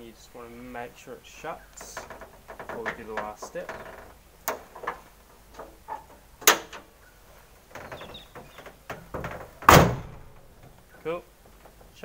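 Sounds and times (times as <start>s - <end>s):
light rattling: 1.5s - 12.0s
car bonnet slamming shut: 6.4s - 6.9s, 7.8s - 10.8s.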